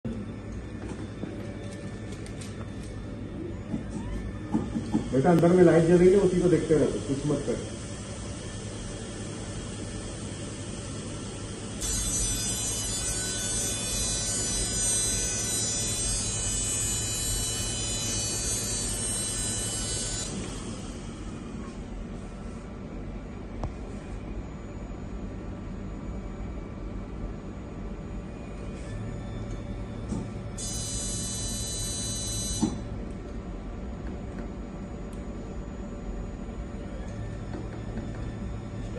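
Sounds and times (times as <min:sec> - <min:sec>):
equipment hum: 0:00.0 - 0:38.9
laser electric buzz with whine: 0:00.1 - 0:38.9
high electronic tone: 0:30.6 - 0:32.9.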